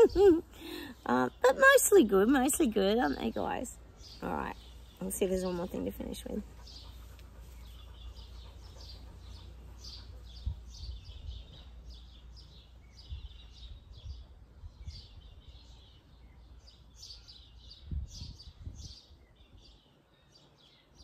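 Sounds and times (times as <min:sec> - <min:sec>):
birds chirping and twittering: 0:00.0 - 0:21.0.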